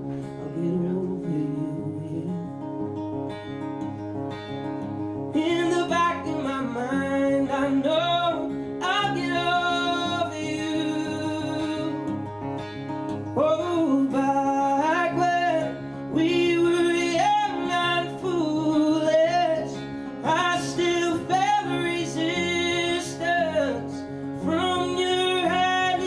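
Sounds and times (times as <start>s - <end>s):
acoustic guitar: 0.0s - 26.0s
man singing: 0.2s - 2.8s, 5.3s - 12.2s, 13.2s - 26.0s.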